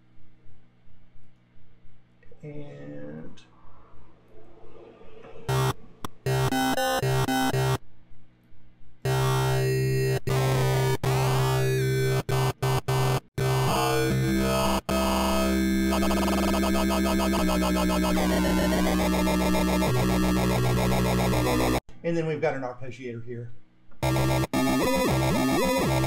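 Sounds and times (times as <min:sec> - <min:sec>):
dirty synth bass: 0:05.5 - 0:07.8, 0:09.1 - 0:21.8, 0:24.0 - 0:26.0.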